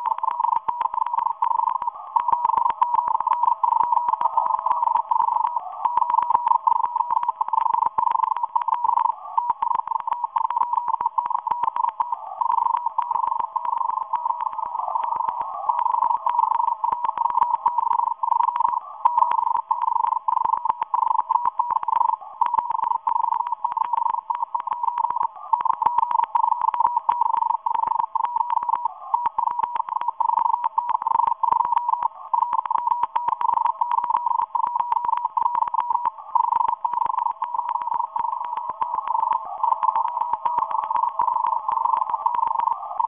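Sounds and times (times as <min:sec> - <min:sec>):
morse code tone: 0:00.0 - 0:43.0.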